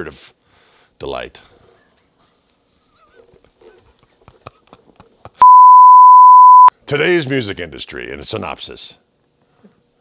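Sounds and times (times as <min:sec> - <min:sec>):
loud test-tone beep: 0:05.4 - 0:06.7.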